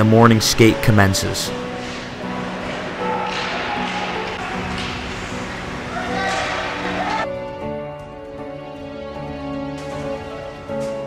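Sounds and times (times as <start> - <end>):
players' voices: 0.0 - 7.3
background music: 0.0 - 11.0
sticks and pucks tapping on ice: 1.8 - 7.1.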